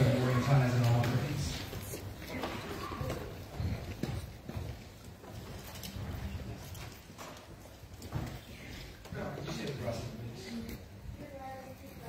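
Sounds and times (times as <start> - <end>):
footsteps on wooden floor: 0.3 - 9.7.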